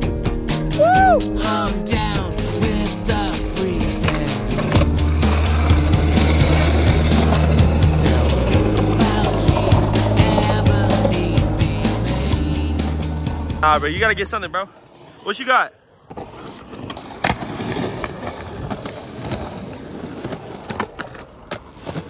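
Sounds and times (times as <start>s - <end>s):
music with steady beat: 0.0s - 13.6s
skateboard wheels on concrete: 0.0s - 22.0s.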